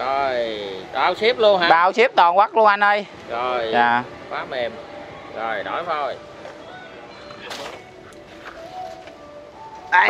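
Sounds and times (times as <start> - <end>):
faint background music: 0.0 - 10.0
distant voices: 3.0 - 10.0.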